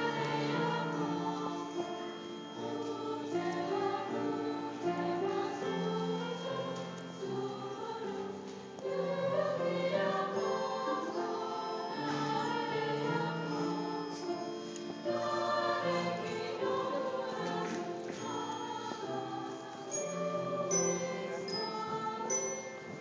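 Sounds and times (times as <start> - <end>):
women's choir singing: 0.0 - 23.0.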